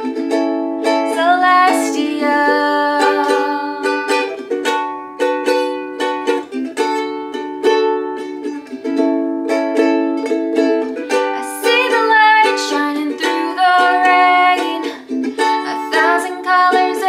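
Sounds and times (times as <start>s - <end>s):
ukulele strumming chords: 0.0s - 17.0s
woman singing: 1.0s - 4.3s, 11.2s - 17.0s.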